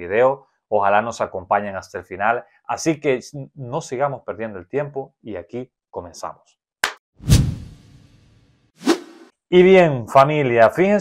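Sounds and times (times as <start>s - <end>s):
deep whoosh: 7.2s - 8.2s
short whoosh: 7.2s - 9.3s.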